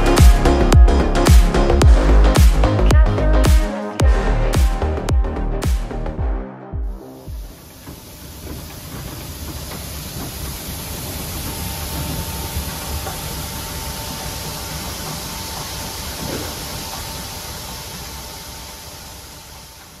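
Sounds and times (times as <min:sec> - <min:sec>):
low machine rumble: 0:07.2 - 0:20.0
faint steady whine: 0:07.3 - 0:20.0.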